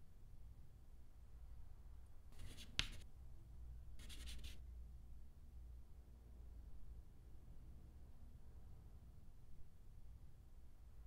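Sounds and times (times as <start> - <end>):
chalk scratching on blackboard: 2.4 - 3.0, 4.0 - 4.6
chalk tapping against board: 2.4 - 3.0, 4.0 - 4.6.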